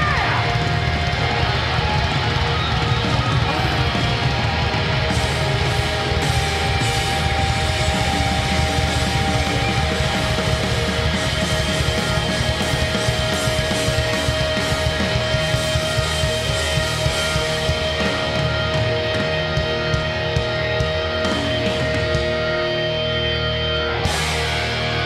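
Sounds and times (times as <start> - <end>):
drum kit: 0.0 - 25.0
electric guitars: 0.0 - 25.0.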